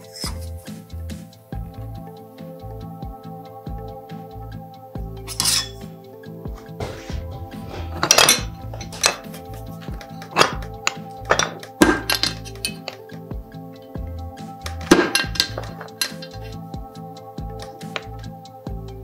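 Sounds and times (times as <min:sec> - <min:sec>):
music: 0:00.0 - 0:19.0
chips clinking on metal plate: 0:08.0 - 0:13.0, 0:14.8 - 0:16.6.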